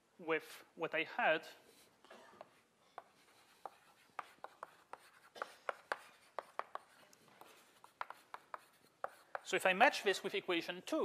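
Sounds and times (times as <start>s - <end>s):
chalk tapping and scratching on blackboard: 1.7s - 9.6s.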